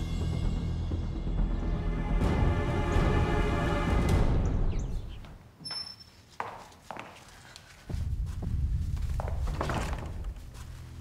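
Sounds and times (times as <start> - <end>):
dramatic music with drums: 0.0 - 4.9
footsteps on hard floor: 6.3 - 11.0.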